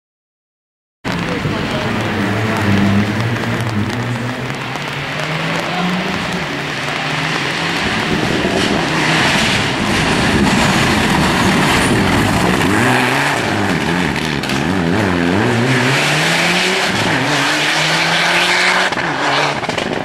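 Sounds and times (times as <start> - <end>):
rally car engine revving: 1.1 - 20.0.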